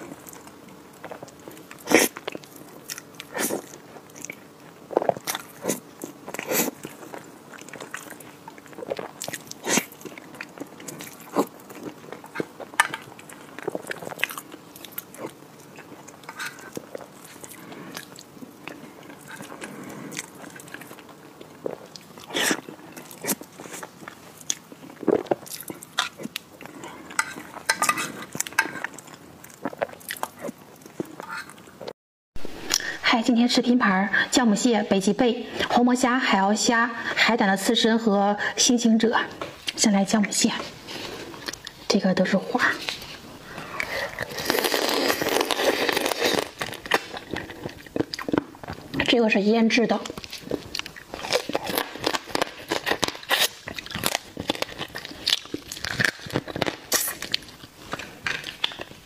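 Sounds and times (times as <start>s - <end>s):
woman chewing and crunching: 0.0s - 31.9s, 42.8s - 49.2s, 50.0s - 59.0s.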